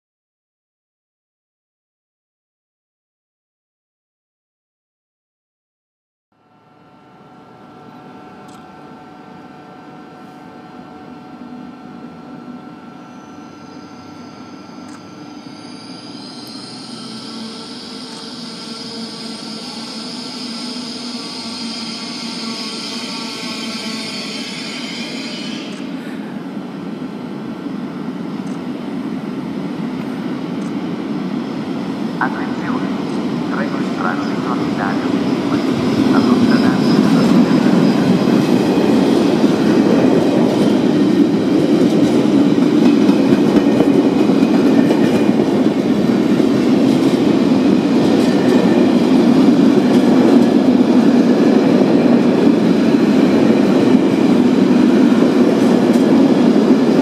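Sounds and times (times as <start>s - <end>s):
electric train rumble: 6.4s - 57.0s
high whine: 6.4s - 57.0s
train wheels clicking: 38.8s - 51.2s.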